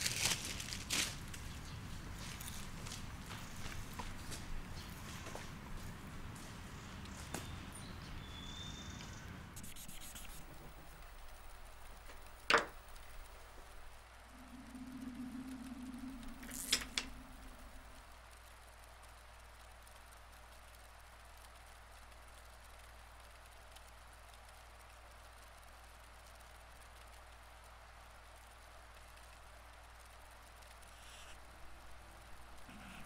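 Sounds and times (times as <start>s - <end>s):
faint steady hiss: 0.0s - 33.0s
low hum: 7.8s - 21.5s.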